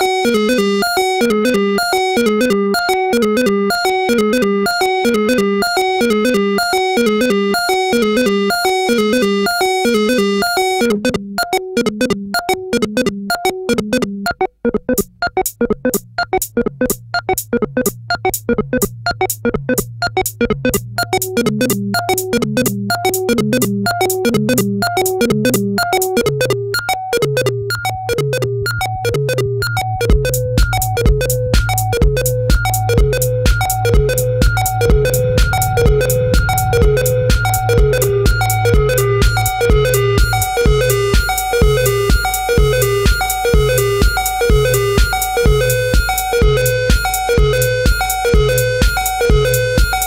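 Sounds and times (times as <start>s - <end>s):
minimal techno synth melody: 0.0s - 50.0s.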